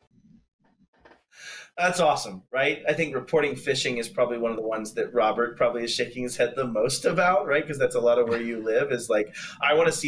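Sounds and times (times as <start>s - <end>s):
man breathing in: 1.3s - 1.8s
man speaking: 1.7s - 10.0s.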